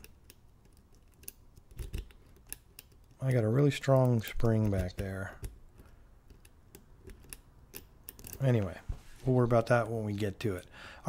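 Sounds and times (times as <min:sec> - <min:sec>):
lock pick ticks and scrapes: 0:00.0 - 0:08.7.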